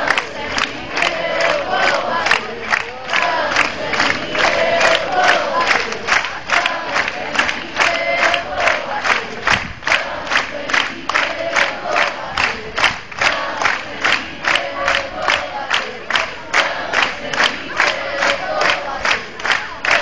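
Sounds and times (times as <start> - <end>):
crowd chanting in held notes: 0.0 - 20.0
crowd clapping in rhythm: 0.0 - 20.0.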